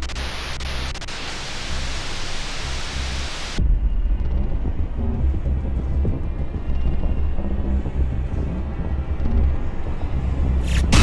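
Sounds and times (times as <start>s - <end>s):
television static hiss: 0.0s - 3.6s
low rumbling music drone: 2.9s - 11.0s.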